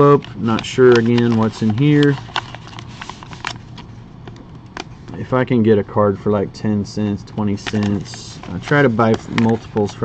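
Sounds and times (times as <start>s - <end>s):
paper envelope crinkling: 0.0s - 3.9s, 7.5s - 10.0s.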